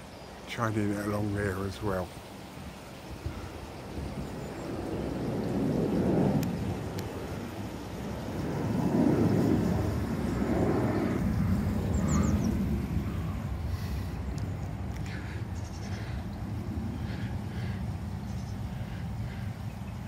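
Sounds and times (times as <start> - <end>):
low outdoor rumbling: 3.1 - 20.0.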